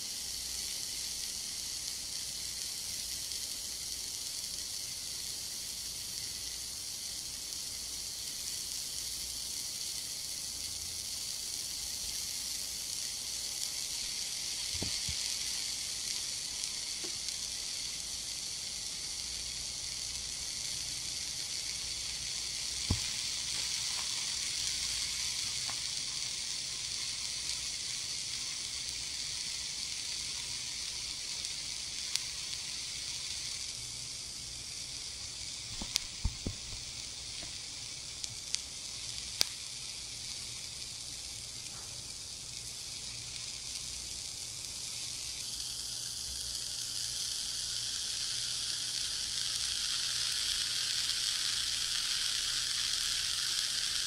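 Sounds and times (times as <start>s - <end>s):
ear candle hissing: 0.0s - 54.0s
faint pops: 22.8s - 24.1s, 35.7s - 37.6s.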